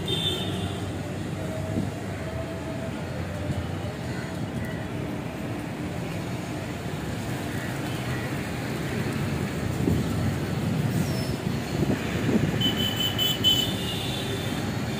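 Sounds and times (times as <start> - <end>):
traffic rumble: 0.0 - 14.9.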